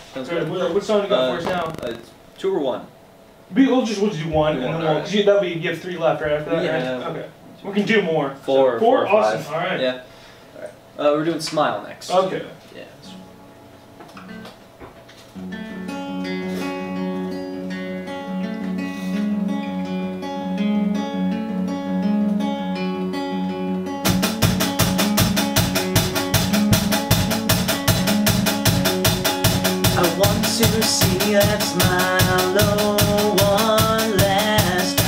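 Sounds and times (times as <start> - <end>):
acoustic guitar picking: 13.1 - 35.0
drums quick beat: 24.0 - 35.0.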